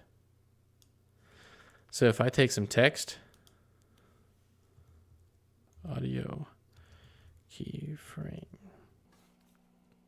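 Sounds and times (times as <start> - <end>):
computer mouse clicks: 3.3 - 4.1, 6.7 - 7.5.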